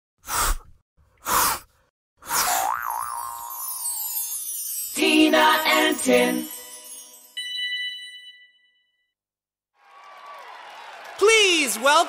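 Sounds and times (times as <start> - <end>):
springy boing: 2.6 - 3.6
glittery sparkle sweep: 3.1 - 8.0.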